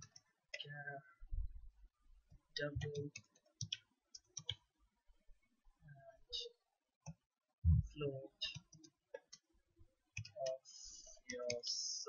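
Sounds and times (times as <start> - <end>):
person speaking: 0.6 - 1.2, 2.6 - 3.2, 7.7 - 8.8, 10.2 - 12.0.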